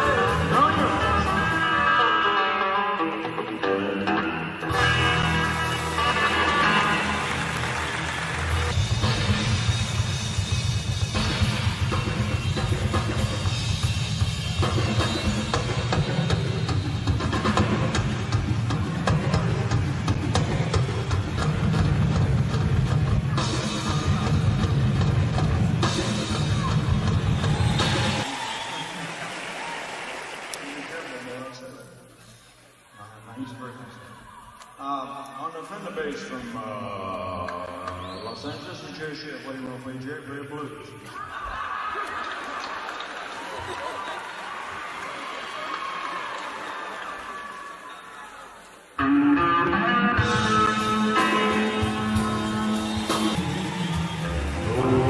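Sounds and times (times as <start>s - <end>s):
live band music: 0.0s - 28.4s, 49.0s - 55.0s
rock drum solo: 8.4s - 28.3s.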